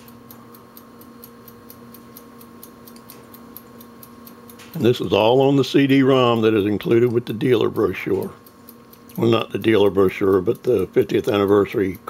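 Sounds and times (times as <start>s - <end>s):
faint rapid ticking: 0.0s - 12.0s
low steady hum: 0.0s - 12.0s.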